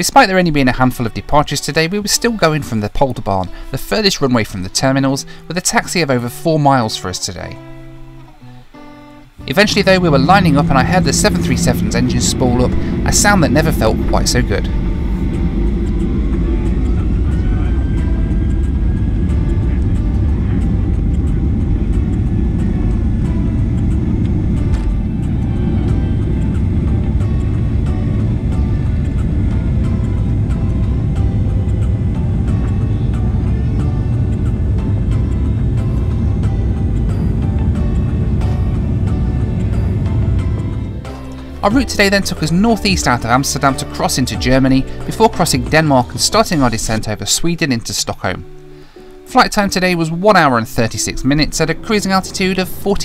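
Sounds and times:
deep engine rumble: 9.2s - 47.8s, 49.4s - 53.0s
jet engine whine: 9.3s - 47.2s.

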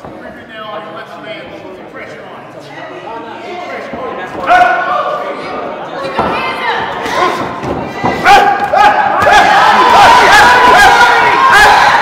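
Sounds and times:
crowd yelling: 6.0s - 12.0s.

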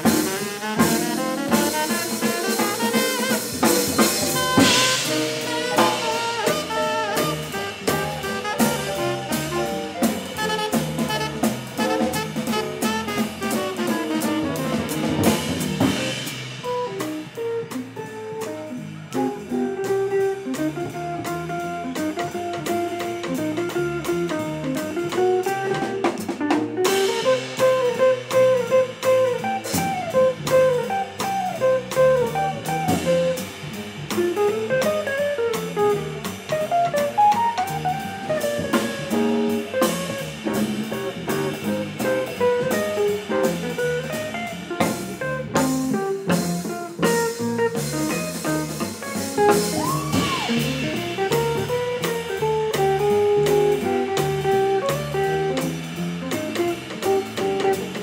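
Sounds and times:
drum kit with cymbal ticks: 0.0s - 58.0s
electric guitar melody: 0.0s - 58.0s
sharp drum accent: 0.0s - 58.0s
walking upright bass: 0.0s - 58.0s.

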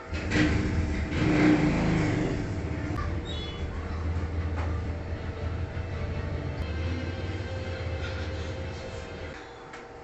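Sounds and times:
steady low rumble: 2.3s - 9.3s.

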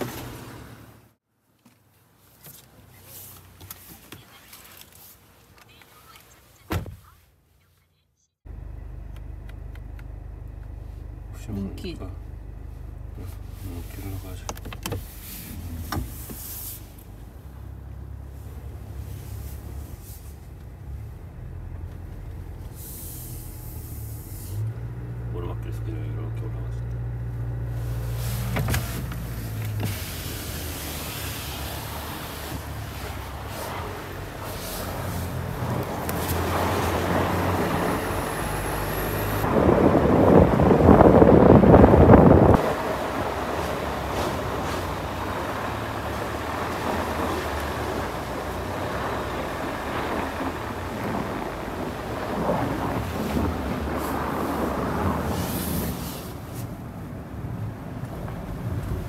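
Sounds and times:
car engine hum: 0.0s - 1.2s, 2.0s - 59.0s
road noise: 0.0s - 59.0s.

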